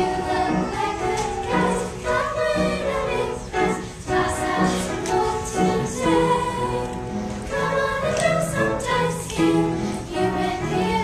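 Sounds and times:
girls singing in chorus: 0:00.0 - 0:11.0
low musical accompaniment: 0:00.0 - 0:11.0.

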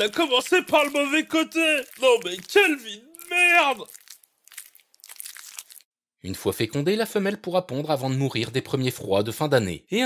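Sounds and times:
insect crunching and chewing: 0:00.0 - 0:06.0.

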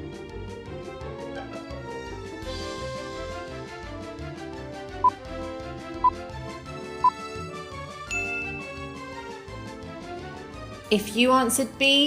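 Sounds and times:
light background music: 0:00.0 - 0:12.0
high chime: 0:08.1 - 0:09.0.

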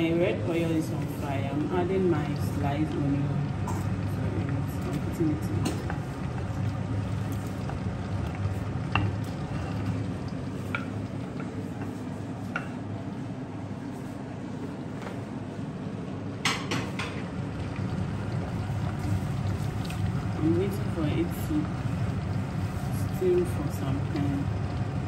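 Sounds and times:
steady low hum: 0:00.0 - 0:25.0
onions frying sizzle: 0:00.8 - 0:12.0, 0:16.9 - 0:25.0.

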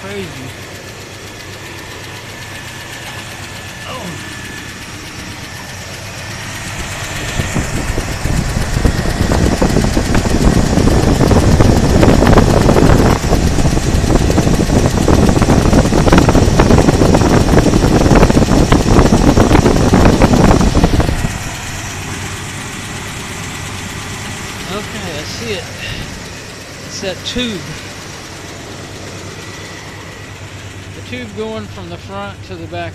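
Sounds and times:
car engine running: 0:00.0 - 0:32.9.

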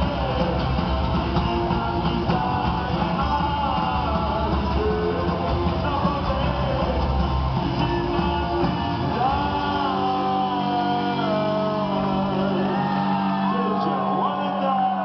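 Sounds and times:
lead vocal singing: 0:00.0 - 0:15.0
punk rock band playing live: 0:00.0 - 0:15.0.

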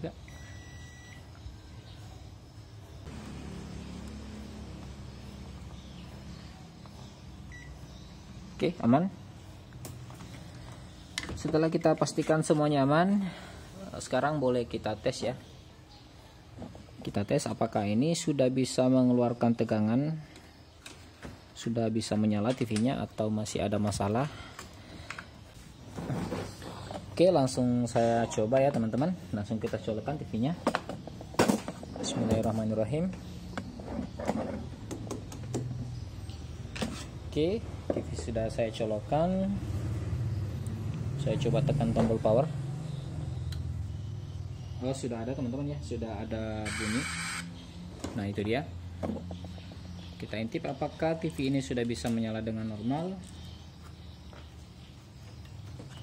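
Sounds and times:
multimeter continuity buzzer beep: 0:00.2 - 0:02.3, 0:07.5 - 0:08.1, 0:46.6 - 0:47.6.

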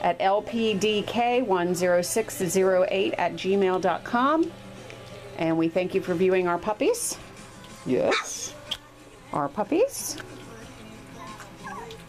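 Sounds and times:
puppies whimpering: 0:08.0 - 0:08.5, 0:11.2 - 0:12.0
puppy squealing: 0:08.1 - 0:08.5, 0:11.6 - 0:12.0.

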